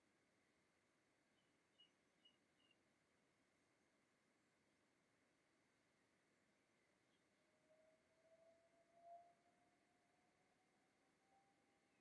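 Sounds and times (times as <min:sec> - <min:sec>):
faint rising whistle-like tone: 0:07.1 - 0:12.0.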